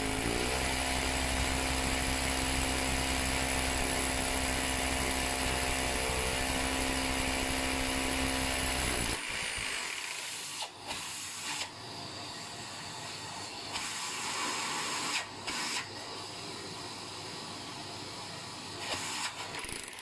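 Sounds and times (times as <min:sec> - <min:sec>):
hammer drill drilling into brick: 0:00.0 - 0:11.7, 0:18.8 - 0:20.0.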